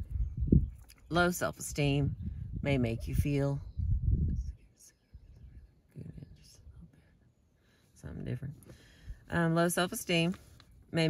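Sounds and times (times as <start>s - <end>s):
faint low rumble: 0.0s - 7.1s
woman breathing: 8.6s - 9.3s.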